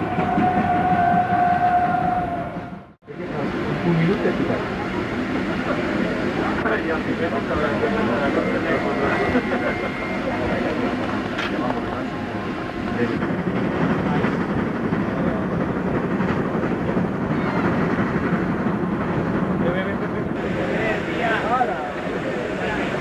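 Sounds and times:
train rumbling on rails: 0.0s - 23.0s
people's voices: 3.1s - 23.0s.

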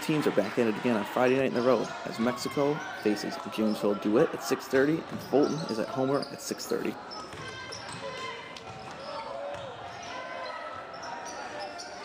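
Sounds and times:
crowd chatter: 0.0s - 12.0s
sneakers squeaking on hardwood: 4.9s - 12.0s
basketball bouncing: 7.3s - 10.0s.

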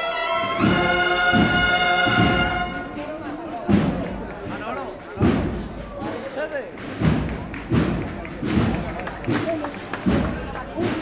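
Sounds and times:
bass drum beating: 0.6s - 11.0s
people talking: 2.6s - 11.0s.

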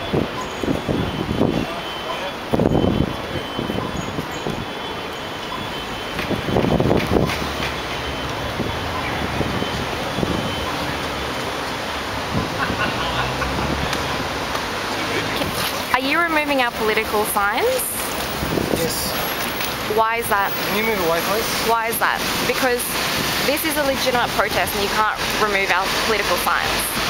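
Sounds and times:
outdoor city noise: 0.0s - 27.0s.

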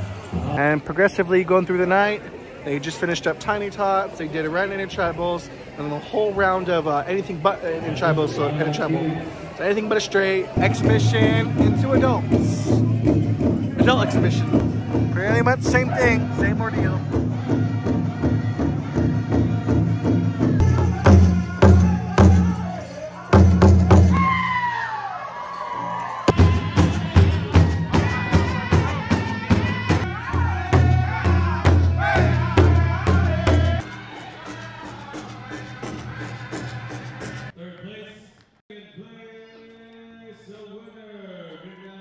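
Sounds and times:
big drum beating: 10.6s - 22.7s, 26.3s - 37.5s
high singing voices: 10.6s - 37.6s.

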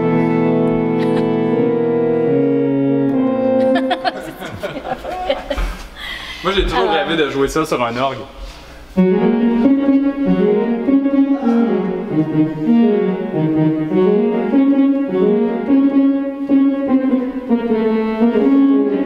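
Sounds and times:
organ playing slow melody: 0.0s - 5.6s, 8.9s - 19.0s.

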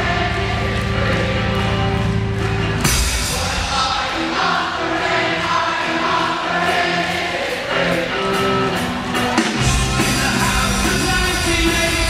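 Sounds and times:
electric guitar: 0.0s - 12.0s
man singing: 9.6s - 12.0s.

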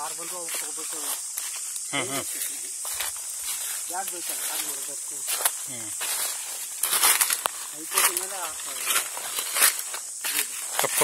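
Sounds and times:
cicadas buzzing: 0.0s - 11.0s
footsteps crunching dry leaves: 0.0s - 11.0s.

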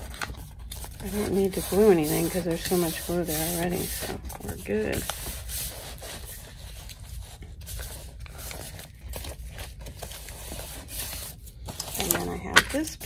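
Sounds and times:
hands rubbing paper: 0.0s - 13.0s.

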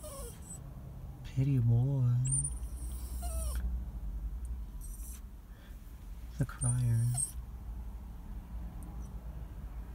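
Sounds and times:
small dog whining: 0.0s - 0.6s, 2.2s - 3.7s, 4.8s - 5.3s, 6.6s - 7.4s.

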